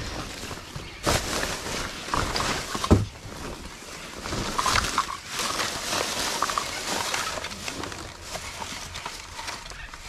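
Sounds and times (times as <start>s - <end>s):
fabric and plastic bags rustling: 0.0s - 10.0s.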